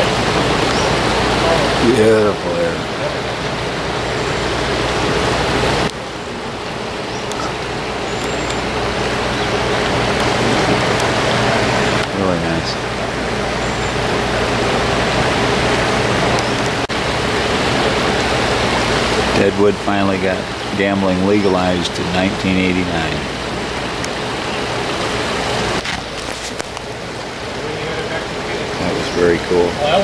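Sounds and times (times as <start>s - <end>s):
creek rushing over stones: 0.0s - 30.0s.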